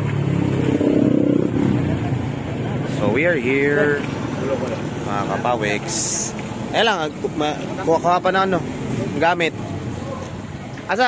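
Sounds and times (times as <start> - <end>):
motor scooter engine passing: 0.0 - 6.2
voices in background: 1.6 - 11.0.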